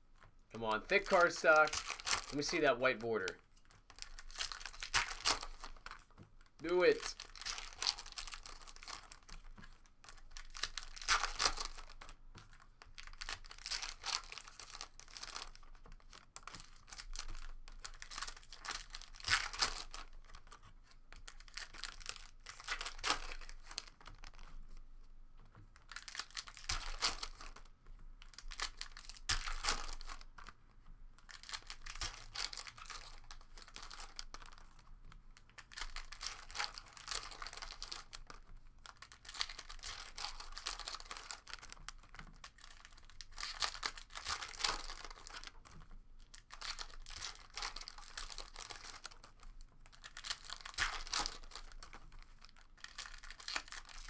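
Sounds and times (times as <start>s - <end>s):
foil wrappers tearing and crinkling: 0.7s - 12.1s, 13.0s - 20.6s, 21.2s - 24.5s, 25.8s - 27.6s, 28.3s - 30.5s, 31.3s - 34.9s, 35.6s - 54.0s.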